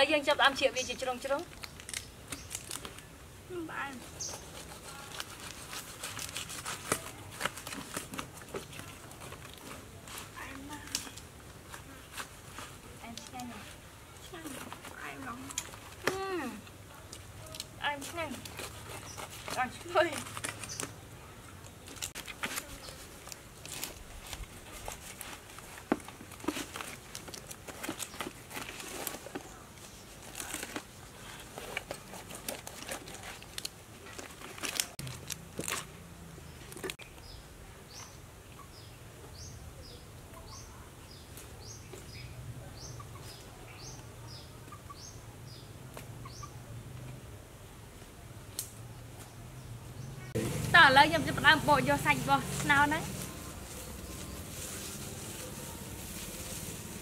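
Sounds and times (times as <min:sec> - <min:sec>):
bird chirping: 0:03.8 - 0:04.7.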